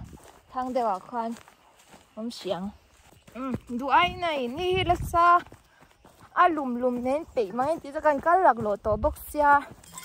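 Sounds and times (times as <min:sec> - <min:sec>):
woman speaking high-pitched: 0:00.5 - 0:01.4, 0:02.2 - 0:05.5, 0:06.3 - 0:09.8.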